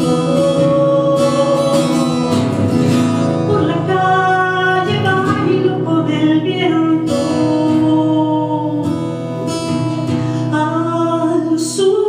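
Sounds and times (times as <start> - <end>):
woman singing: 0.0 - 2.5, 3.2 - 9.2, 10.4 - 12.0
acoustic guitar strumming: 0.0 - 12.0.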